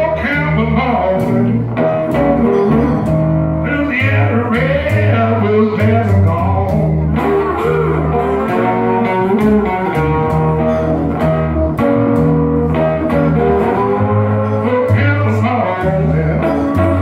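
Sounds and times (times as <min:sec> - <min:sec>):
double bass plucking: 0:00.0 - 0:17.0
electric guitar playing blues: 0:00.0 - 0:17.0.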